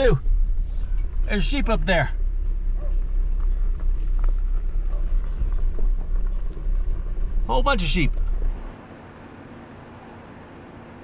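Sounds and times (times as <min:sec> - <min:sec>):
vehicle engine and tyres rumbling: 0:00.0 - 0:11.0.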